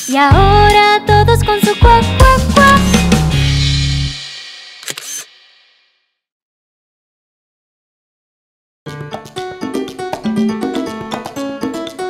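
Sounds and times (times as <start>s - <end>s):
camera shutter double click: 4.8s - 5.3s.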